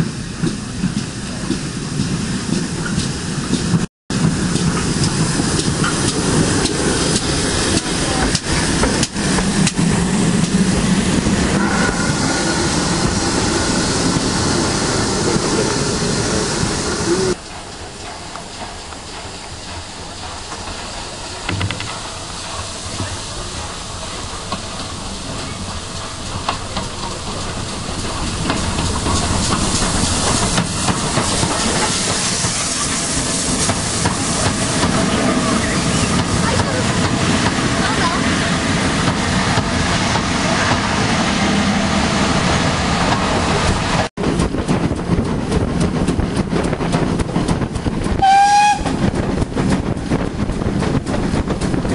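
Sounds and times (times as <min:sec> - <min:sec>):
steam locomotive running: 0:00.0 - 0:51.9
train running noise: 0:00.0 - 0:51.9
steam hissing: 0:01.7 - 0:51.9.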